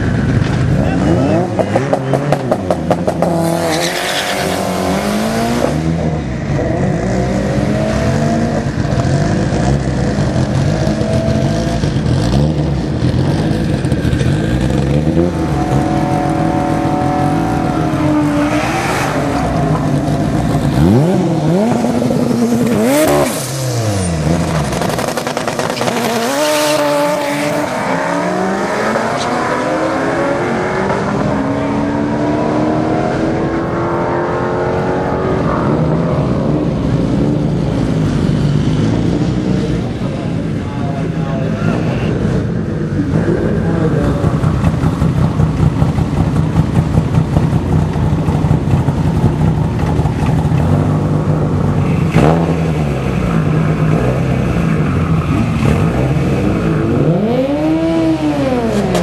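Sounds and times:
drag racing car engines revving: 0.0s - 59.0s.

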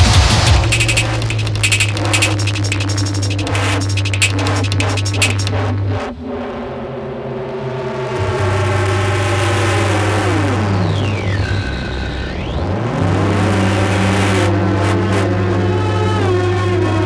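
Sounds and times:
buzzing synthesizer drone: 0.5s - 5.5s.

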